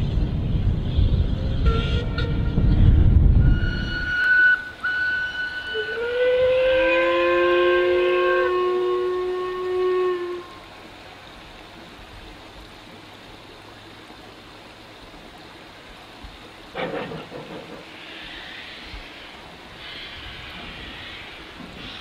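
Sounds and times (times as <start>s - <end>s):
steam locomotive whistles: 1.0s - 10.7s.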